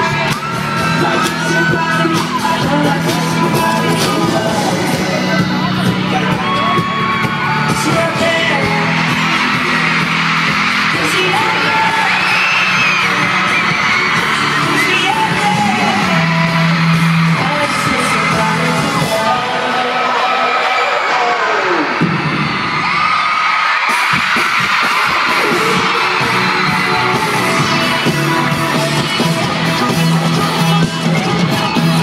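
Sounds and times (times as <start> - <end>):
person singing over band: 0.0 - 7.0, 7.6 - 10.1, 10.8 - 21.8
crowd screaming and cheering: 0.0 - 32.0
live pop music: 0.0 - 32.0.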